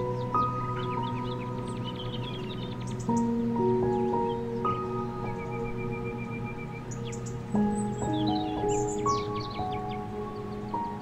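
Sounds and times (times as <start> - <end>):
birds chirping: 0.0 - 11.0
calm ambient music: 0.0 - 11.0.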